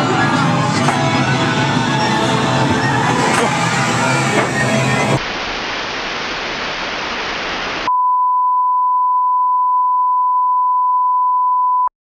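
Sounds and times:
television static hiss: 1.6 - 7.9
steady beep tone: 7.9 - 11.9.

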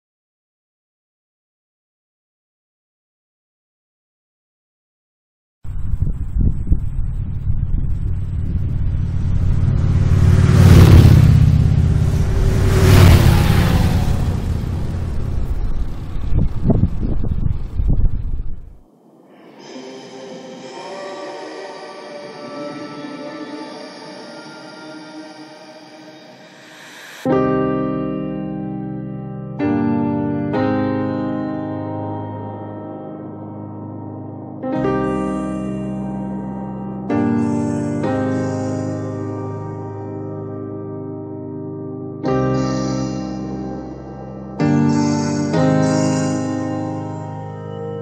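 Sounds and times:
motorcycles passing at speed: 8.4 - 16.6
soft music of held tones: 42.2 - 48.0.

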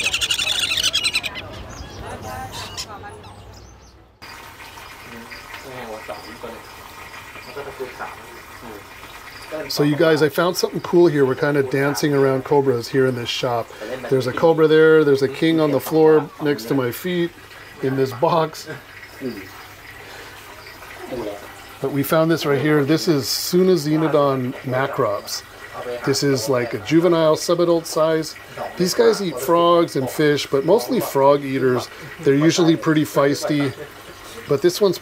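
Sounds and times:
faint background chatter: 0.0 - 4.2, 4.8 - 35.0.

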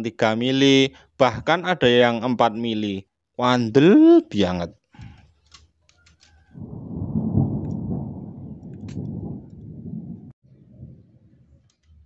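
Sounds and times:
wind buffeting microphone: 6.4 - 12.0.

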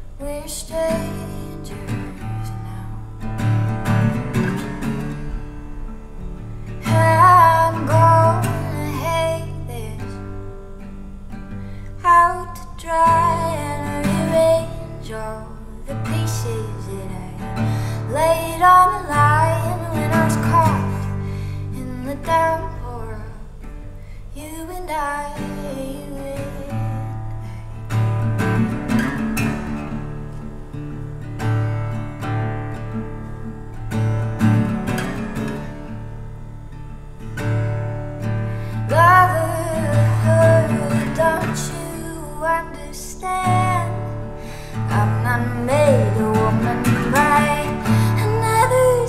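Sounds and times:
acoustic guitar playing: 0.0 - 49.0
woman singing: 0.1 - 3.5, 6.8 - 10.6, 12.0 - 23.7, 24.3 - 27.5, 38.7 - 49.0.

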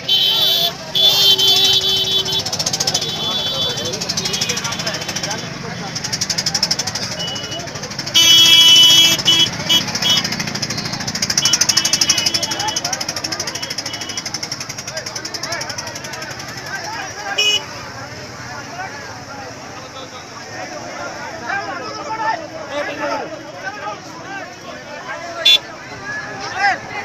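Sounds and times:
crowd voices: 0.0 - 27.0
rapid drumming: 9.0 - 17.2.

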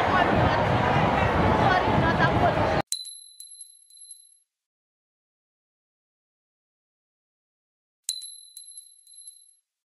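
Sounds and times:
crowd voices: 0.0 - 2.8
bell-like ding chimes: 2.9 - 4.4, 8.1 - 9.6.

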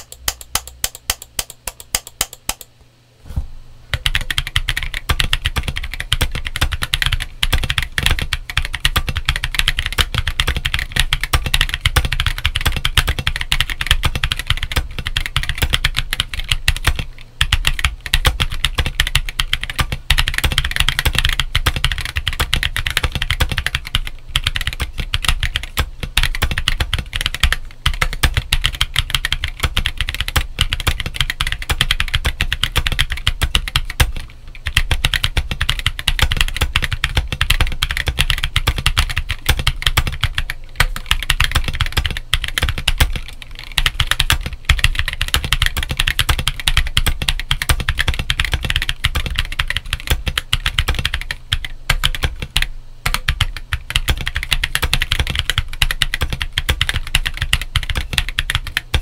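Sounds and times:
typing on mechanical keyboard: 0.0 - 2.7, 3.9 - 59.0.

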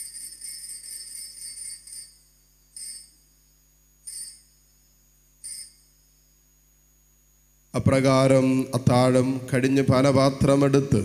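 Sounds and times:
altar bells ringing: 0.0 - 3.3, 4.1 - 4.6, 5.4 - 5.9.

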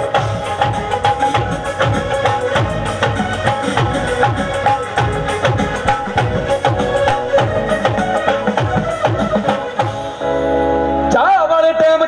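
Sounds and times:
drum strokes: 0.0 - 10.2.

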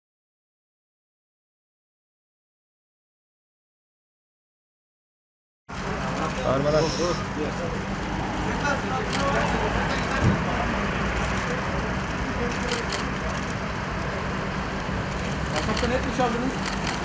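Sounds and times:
traffic: 5.7 - 17.0.

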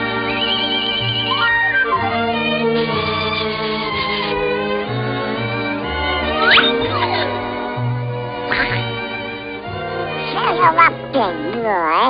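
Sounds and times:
orchestral cartoon music: 0.0 - 12.0
cartoon duck squawk: 1.2 - 2.1, 6.4 - 7.3, 8.5 - 8.9.

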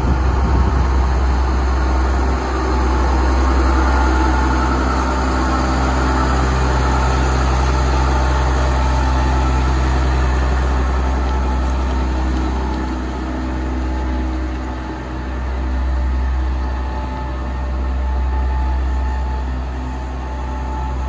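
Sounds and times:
tractor diesel engine passing: 0.0 - 21.0.

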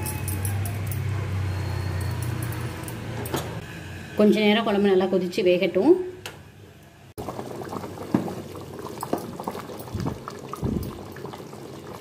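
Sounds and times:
curry bubbling in a pot: 7.2 - 12.0.

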